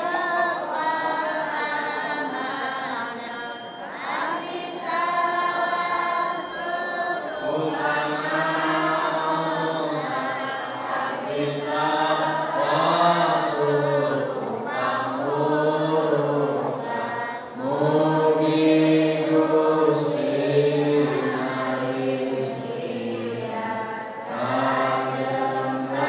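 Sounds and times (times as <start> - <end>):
voices chanting together: 0.0 - 26.0
deep male voice chanting: 7.4 - 23.5.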